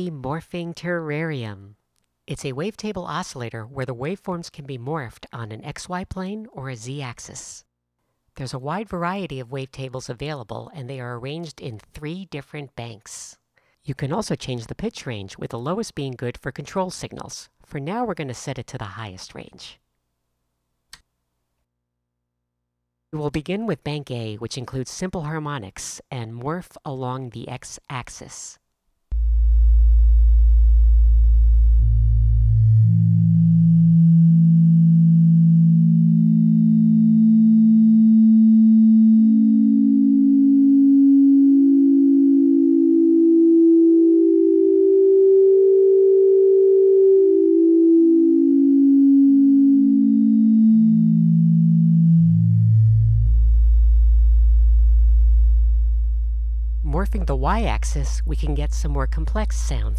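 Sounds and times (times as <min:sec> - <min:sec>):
sine-like tone stepping in pitch: 0:29.1 - 0:59.9.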